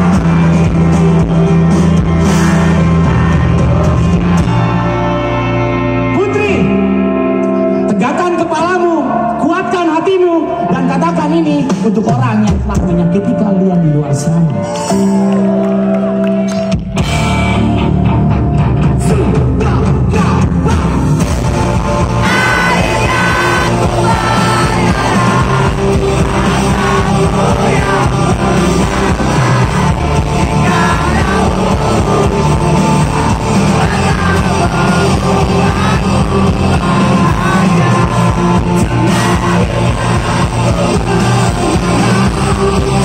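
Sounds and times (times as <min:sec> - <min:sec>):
live rock band playing: 0:00.0 - 0:43.0
man singing lead vocals: 0:19.0 - 0:43.0.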